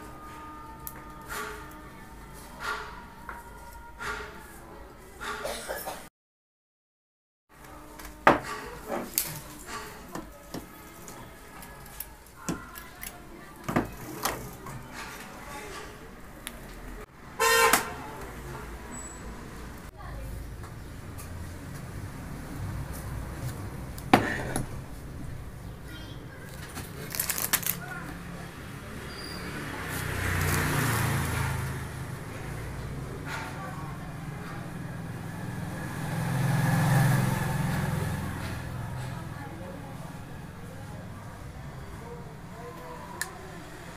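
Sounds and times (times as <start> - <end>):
loud honk: 17.4 - 18.0
vehicle engine drone passing: 28.1 - 43.9.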